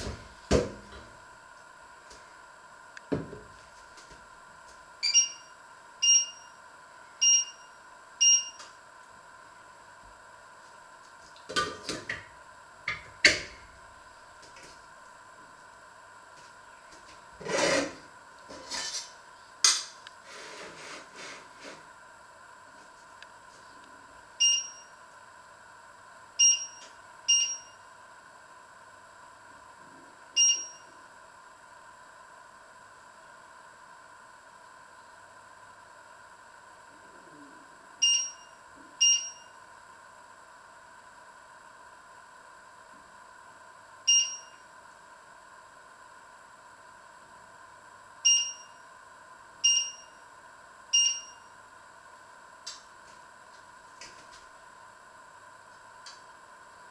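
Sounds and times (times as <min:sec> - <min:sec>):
faint steady hum: 0:00.0 - 0:56.9
short electronic beeps: 0:05.0 - 0:06.5, 0:07.2 - 0:07.6, 0:08.2 - 0:08.6, 0:26.4 - 0:27.8, 0:38.0 - 0:39.5, 0:44.1 - 0:44.5, 0:51.0 - 0:51.4.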